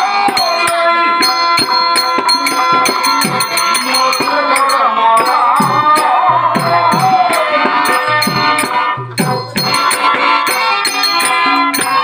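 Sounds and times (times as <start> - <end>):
held melodic notes: 0.0 - 12.0
jingling rattling percussion: 0.0 - 12.0.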